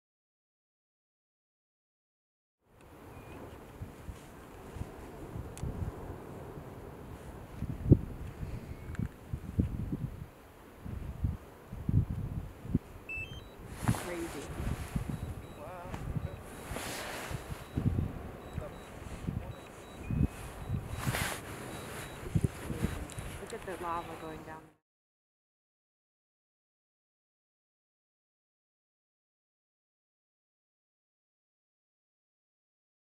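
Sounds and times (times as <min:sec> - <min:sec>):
people's voices: 0:13.8 - 0:17.4, 0:18.5 - 0:24.7.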